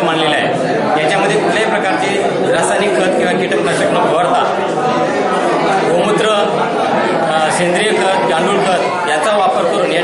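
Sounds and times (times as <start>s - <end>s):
man talking: 0.0s - 4.8s, 5.7s - 10.0s
background voices chattering: 0.0s - 10.0s.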